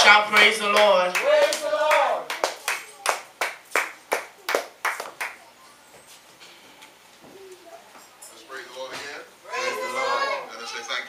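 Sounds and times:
congregation clapping in a beat: 0.0s - 5.4s.

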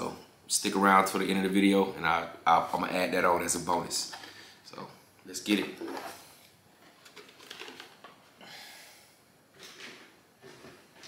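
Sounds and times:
plastic car body clicking and rustling: 6.9s - 8.2s.

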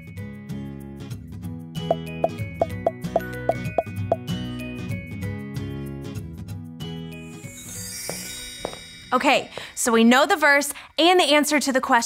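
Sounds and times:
background music: 0.1s - 10.6s.

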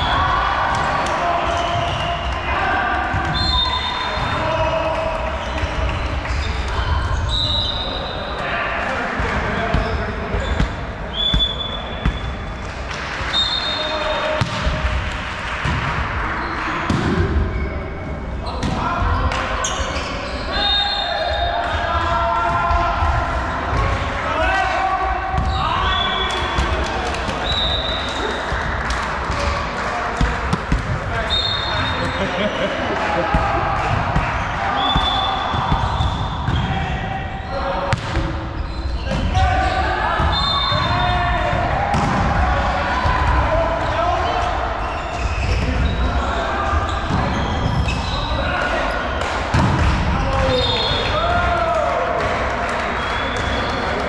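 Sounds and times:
volleyball hits and bounces: 0.7s - 2.3s, 14.3s - 17.6s, 28.5s - 31.2s, 33.2s - 36.9s, 37.8s - 39.6s, 40.2s - 43.5s, 49.2s - 51.0s
players shouting: 30.2s - 38.0s, 39.0s - 54.0s.

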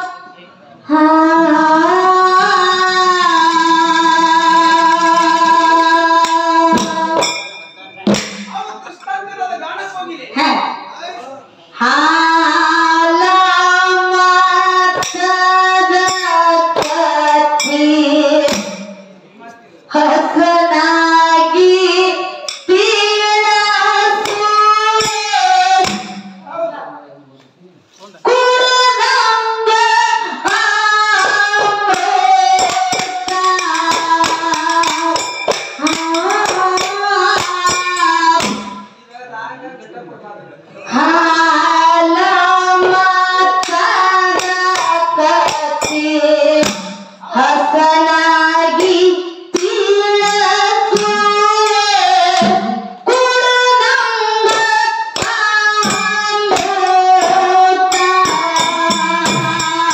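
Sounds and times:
faint percussion strikes: 1.8s - 9.2s, 12.2s - 19.3s, 20.1s - 26.6s, 28.5s - 39.0s, 41.3s - 59.9s
woman singing folk song: 28.3s - 38.6s.

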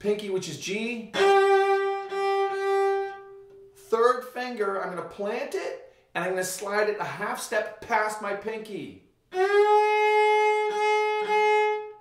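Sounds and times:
bowed cello high note: 1.1s - 3.7s.

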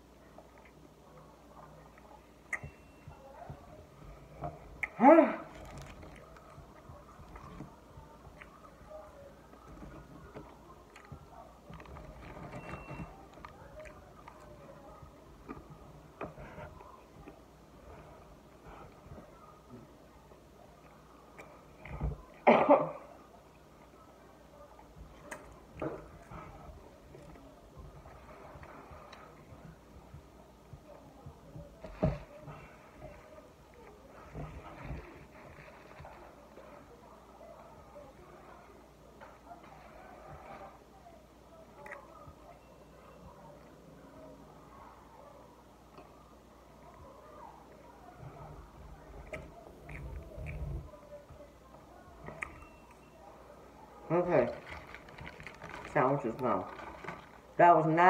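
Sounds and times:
person chewing food: 49.1s - 50.9s.

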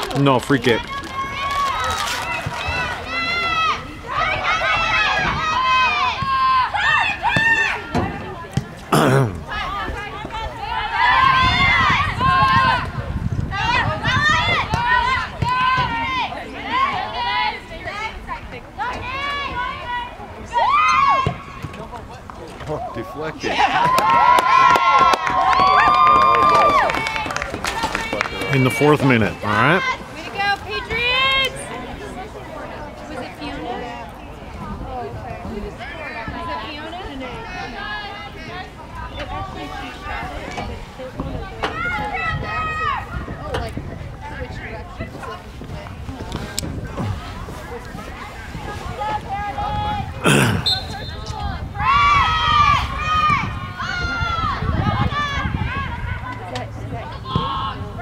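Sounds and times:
people calling out: 49.0s - 56.5s.

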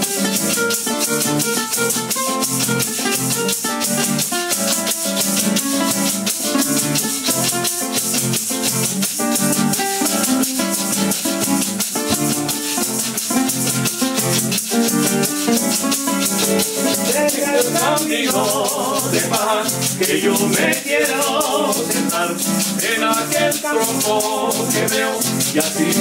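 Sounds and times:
acoustic guitars strumming: 0.0s - 26.0s
maracas shaking: 0.0s - 26.0s.

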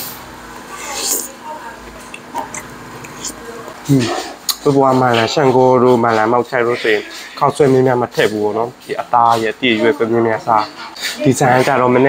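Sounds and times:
man speaking: 3.2s - 12.0s.

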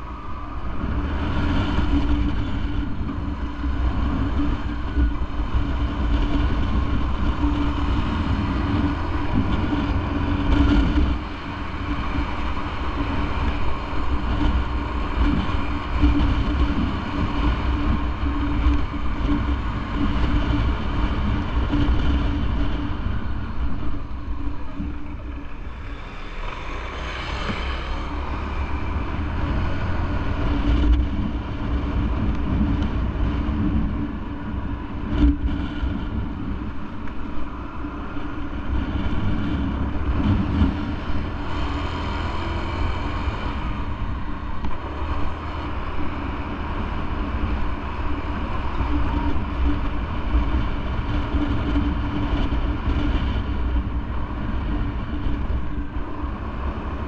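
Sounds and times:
motorcycle engine running: 0.0s - 57.0s
road noise: 0.0s - 57.0s.

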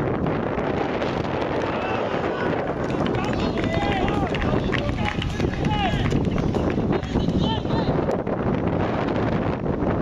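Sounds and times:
people shouting and cheering: 1.5s - 8.1s.

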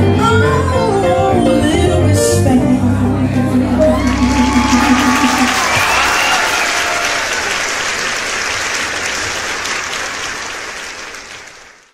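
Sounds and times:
audience applauding: 3.9s - 11.9s.

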